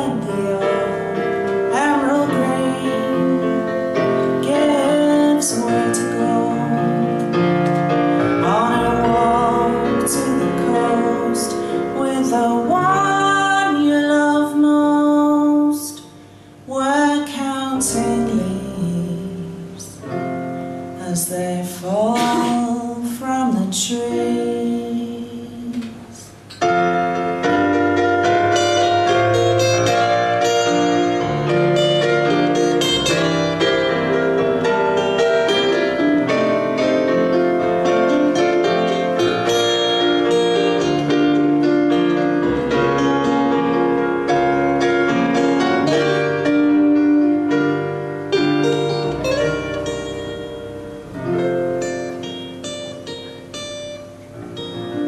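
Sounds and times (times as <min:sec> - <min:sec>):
fingerpicked acoustic guitar: 0:00.0 - 0:13.8, 0:17.2 - 0:55.0.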